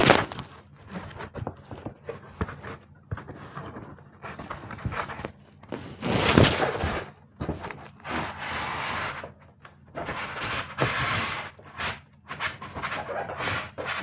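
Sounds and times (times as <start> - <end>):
cardboard scraping rush: 0.0 - 14.0.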